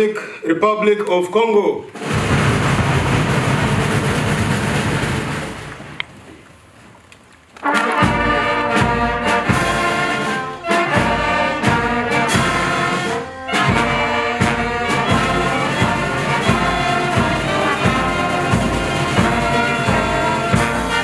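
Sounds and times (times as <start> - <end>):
bass drum beating: 2.0 - 6.0
brass band playing: 7.6 - 21.0.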